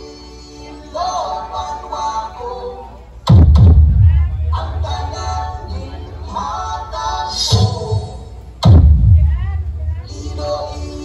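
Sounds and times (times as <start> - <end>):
music through outdoor speakers: 0.0 - 11.0.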